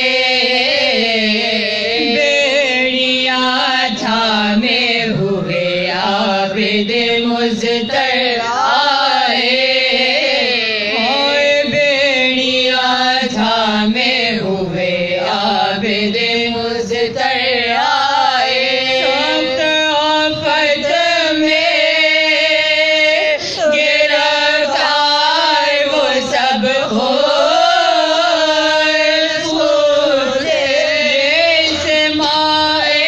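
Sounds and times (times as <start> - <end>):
women chanting a lament: 0.0 - 33.0.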